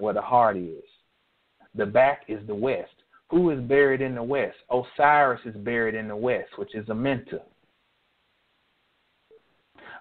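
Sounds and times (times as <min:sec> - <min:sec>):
man speaking: 0:00.0 - 0:01.0, 0:01.6 - 0:07.5
faint hiss: 0:00.0 - 0:10.0.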